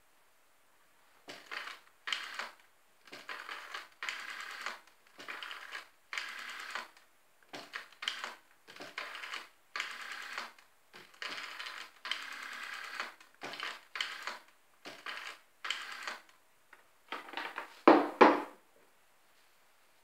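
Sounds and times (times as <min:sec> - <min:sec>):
rotary dial whirring and clicking: 0:01.4 - 0:07.0, 0:07.6 - 0:16.4.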